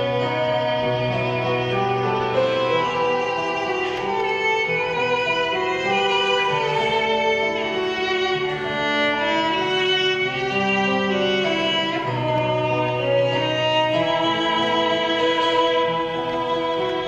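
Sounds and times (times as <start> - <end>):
violins playing a melody: 0.0 - 17.0.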